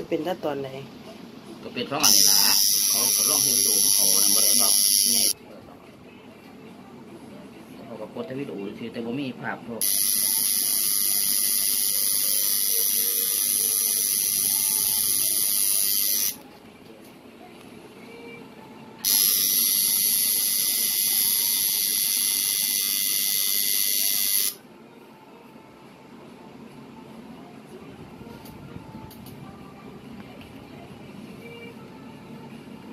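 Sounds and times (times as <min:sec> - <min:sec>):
tattoo machine buzzing: 0:02.0 - 0:05.4, 0:09.8 - 0:16.4, 0:19.0 - 0:24.6.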